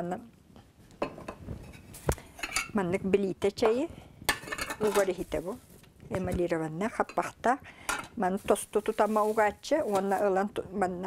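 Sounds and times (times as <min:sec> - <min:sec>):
kitchenware clinking and knocking: 0:01.0 - 0:02.8, 0:03.6 - 0:05.2, 0:07.9 - 0:08.2.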